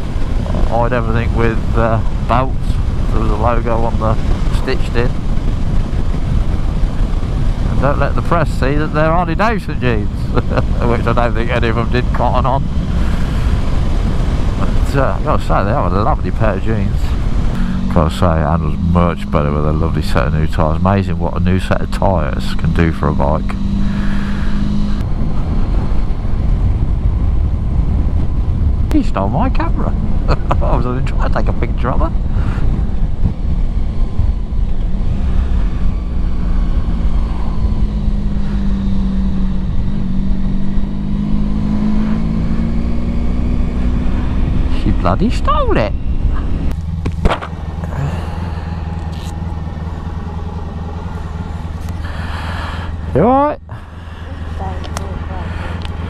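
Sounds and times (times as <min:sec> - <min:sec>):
motorcycle engine running: 0:00.0 - 0:56.0
road rumble: 0:00.0 - 0:56.0
wind: 0:00.0 - 0:56.0
motorcycle engine idling: 0:46.3 - 0:56.0.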